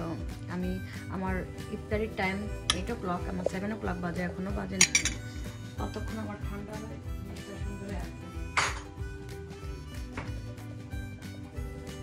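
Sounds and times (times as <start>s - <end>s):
background music: 0.0s - 12.0s
metal spoon clinking on ceramic bowls: 2.6s - 3.0s, 4.7s - 5.4s, 8.5s - 9.0s.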